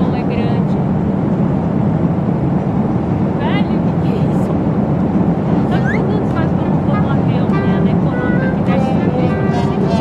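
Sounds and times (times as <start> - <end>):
airliner cabin drone: 0.0 - 10.0
short music notes: 6.9 - 10.0.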